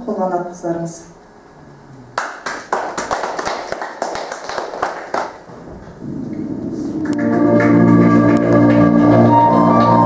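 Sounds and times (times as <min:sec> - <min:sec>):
audience applauding: 0:02.2 - 0:05.5, 0:06.7 - 0:10.0.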